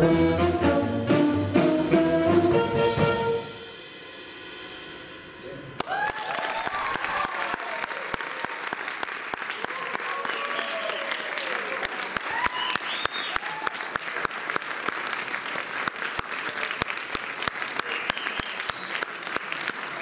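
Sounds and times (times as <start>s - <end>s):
audience applauding: 5.8s - 20.0s.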